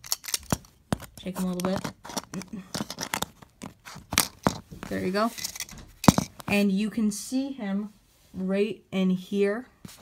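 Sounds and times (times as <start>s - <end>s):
plastic toy pieces clicking: 0.0s - 0.6s.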